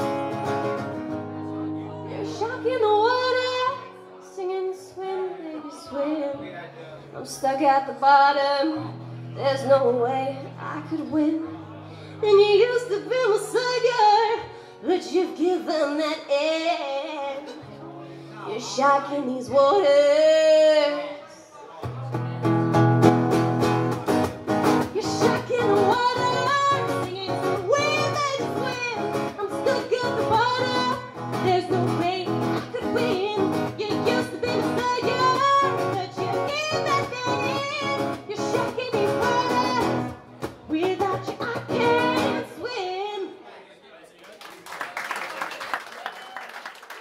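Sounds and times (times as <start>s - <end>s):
acoustic guitar: 0.0s - 43.4s
woman singing: 2.2s - 6.4s, 7.3s - 11.5s, 12.2s - 17.7s, 18.5s - 21.2s, 24.8s - 43.4s.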